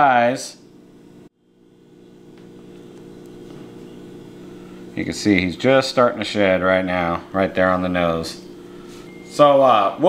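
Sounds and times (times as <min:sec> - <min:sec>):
low machine hum: 0:00.0 - 0:10.0.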